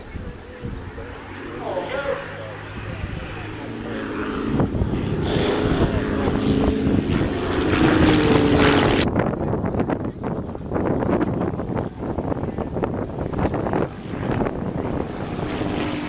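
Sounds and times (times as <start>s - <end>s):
gusty wind noise: 0.0s - 16.0s
light aircraft engine droning: 0.0s - 16.0s.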